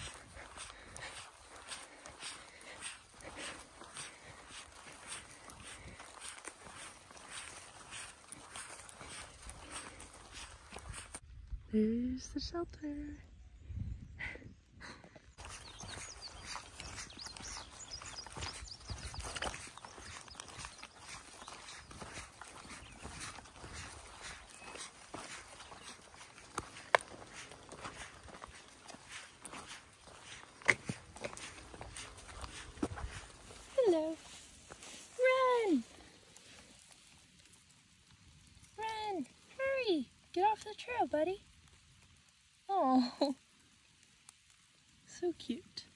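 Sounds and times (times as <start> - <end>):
footsteps on dirt trail: 0.0 - 11.3, 14.8 - 37.5.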